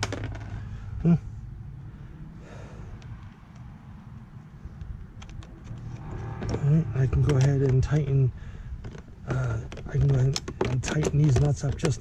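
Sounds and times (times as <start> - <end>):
man talking: 6.6 - 8.4, 9.3 - 12.0.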